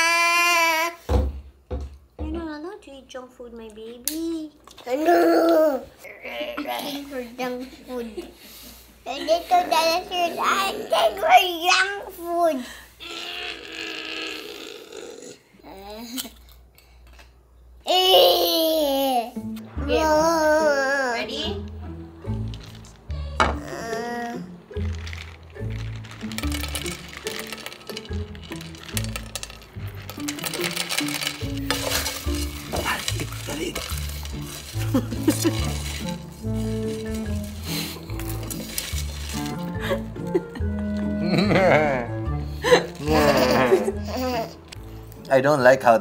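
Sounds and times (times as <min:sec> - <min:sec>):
snack puffs rattling into basket: 0:24.8 - 0:40.0.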